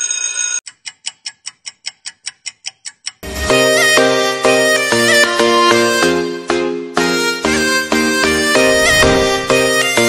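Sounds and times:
clock ticking: 0.6s - 4.1s.

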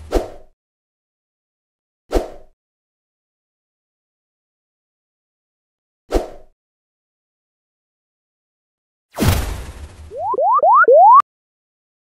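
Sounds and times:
cartoon rising whistle glides: 10.2s - 11.2s.

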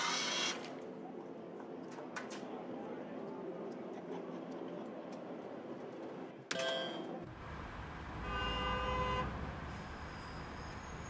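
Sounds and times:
road traffic rumbling: 7.2s - 11.0s
car horn: 8.2s - 9.4s.

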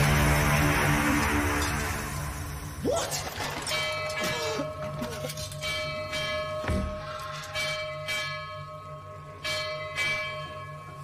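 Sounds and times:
bell ringing: 3.6s - 11.0s.

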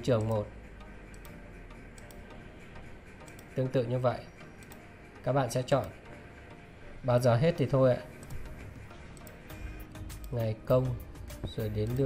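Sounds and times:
computer mouse clicks: 0.1s - 2.3s, 3.2s - 3.6s, 4.5s - 4.9s, 8.2s - 10.4s.

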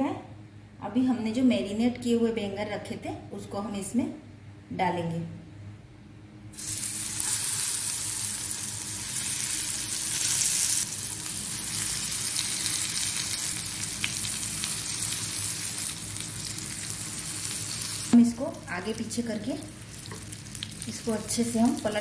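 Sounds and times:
eggplant sizzling in hot oil: 6.6s - 22.0s.

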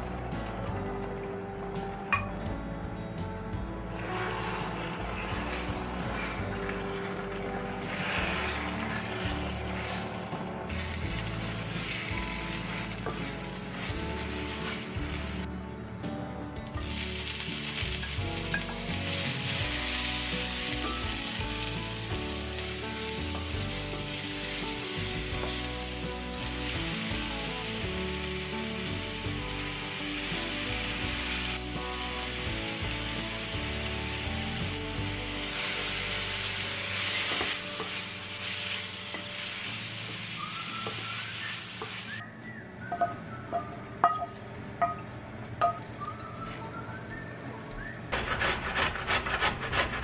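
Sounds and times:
background music: 0.0s - 50.0s
food sizzling in a skillet: 3.9s - 15.5s, 16.8s - 42.2s.

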